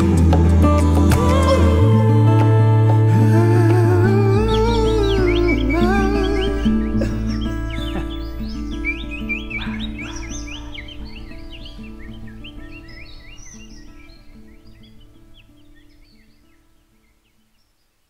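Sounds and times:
low bass: 0.0s - 12.7s
sustained music chords: 0.0s - 16.3s
birds chirping: 0.0s - 18.0s.

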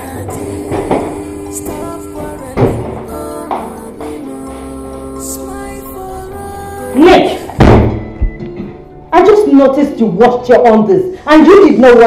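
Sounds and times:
loud deep thud: 7.6s - 8.4s.

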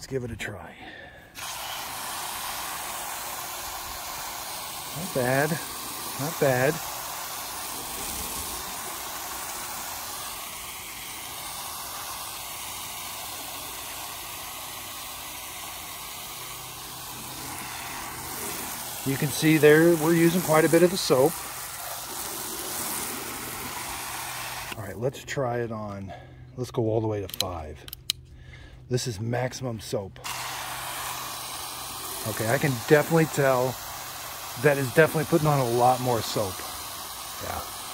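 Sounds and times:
hose spray hissing on metal: 1.3s - 24.8s, 30.2s - 37.9s.

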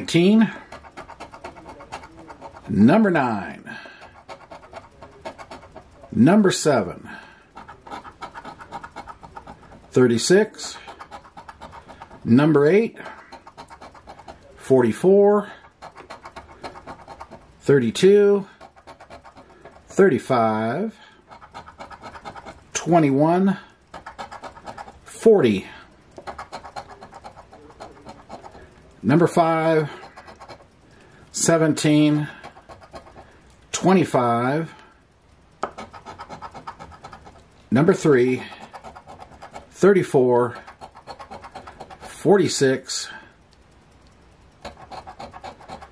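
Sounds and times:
coin scratching lottery ticket: 0.0s - 30.8s, 31.4s - 34.8s, 35.6s - 42.8s, 44.6s - 45.9s.

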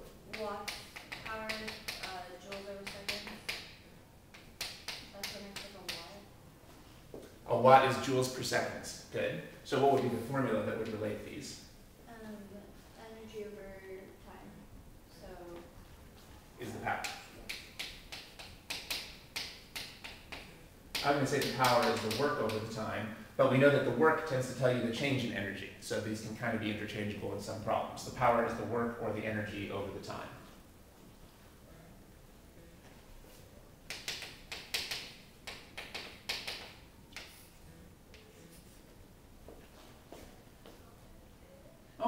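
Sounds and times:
chalk tapping and scratching: 0.3s - 3.7s, 17.0s - 22.8s, 33.3s - 38.8s.

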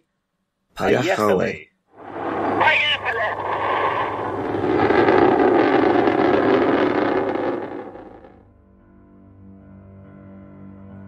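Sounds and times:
loud steady rushing noise: 2.0s - 8.3s
soft music with held notes: 8.8s - 11.0s.

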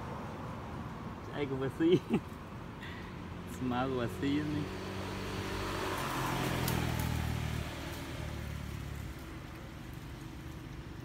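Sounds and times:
low engine hum with rushing: 2.4s - 11.0s.

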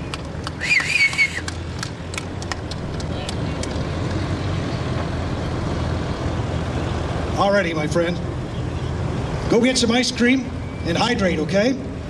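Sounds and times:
handclaps: 0.0s - 3.8s
propeller aircraft engines droning: 0.0s - 12.0s.

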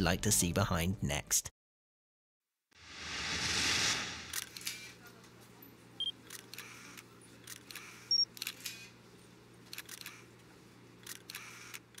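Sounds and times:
camera shutter clicks: 9.7s - 10.2s, 11.0s - 12.0s.

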